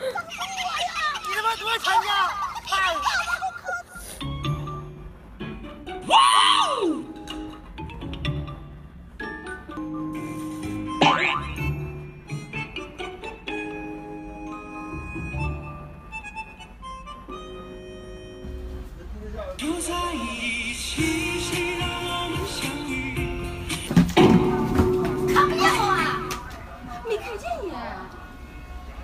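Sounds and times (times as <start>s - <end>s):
excited high-pitched voices: 0.0s - 4.2s
background music: 4.1s - 29.0s
held musical chord: 24.4s - 29.0s.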